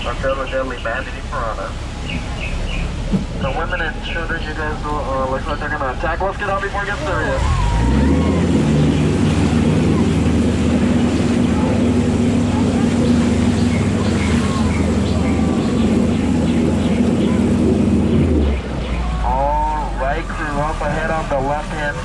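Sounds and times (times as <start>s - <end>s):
boat engine drone: 0.0s - 22.0s
rushing splashing water: 0.0s - 22.0s.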